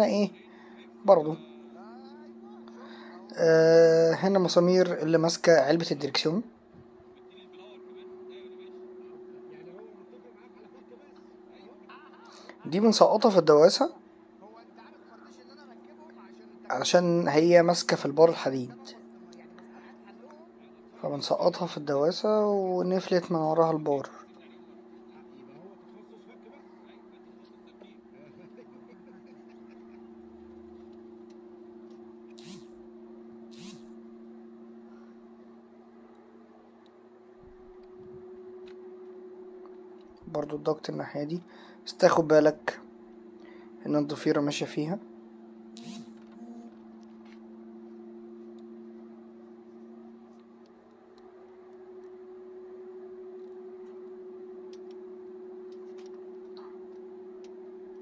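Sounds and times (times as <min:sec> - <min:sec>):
steady low hum: 0:00.0 - 0:58.0
faint clicks from tools: 0:53.4 - 0:55.0.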